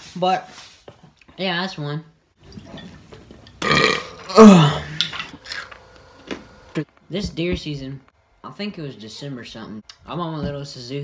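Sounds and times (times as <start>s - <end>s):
person burping loudly: 3.6s - 5.1s.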